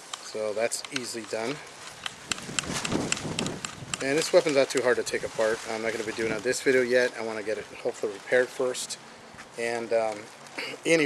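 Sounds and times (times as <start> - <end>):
short rustling: 0.1 - 11.0.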